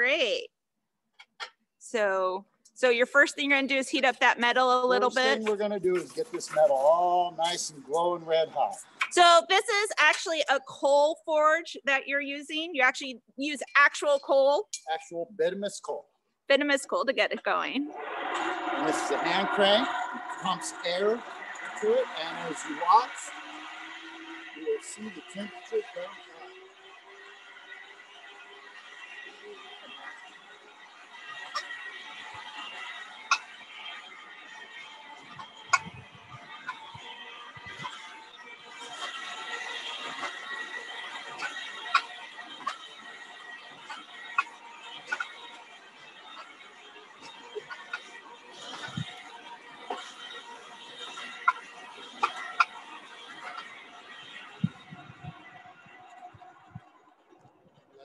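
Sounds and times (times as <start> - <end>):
forge blower whirring: 17.9 - 58.0.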